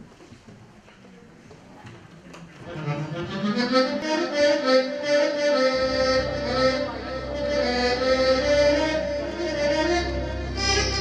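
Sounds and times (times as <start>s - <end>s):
live band playing held melody: 3.5s - 11.0s.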